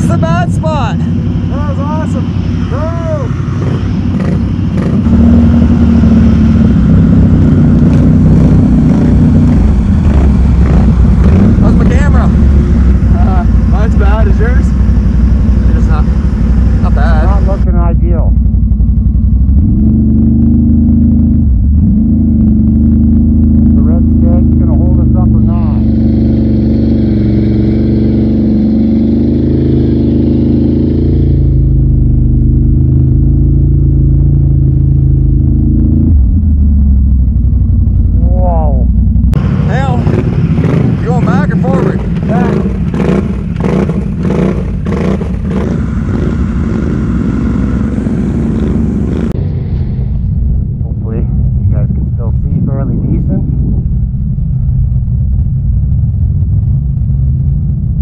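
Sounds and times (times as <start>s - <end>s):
atv engine running hard: 0.0s - 58.0s.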